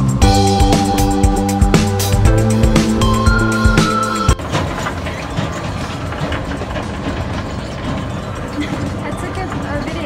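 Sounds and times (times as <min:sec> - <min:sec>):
escalator low rumble: 0:00.0 - 0:10.0.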